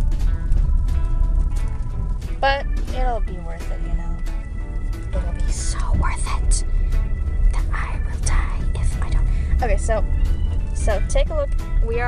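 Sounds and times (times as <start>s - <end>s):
background music: 0.0s - 12.0s
low rumble of car cabin: 0.0s - 12.0s
soft whispery speech: 5.2s - 6.6s, 7.5s - 10.0s.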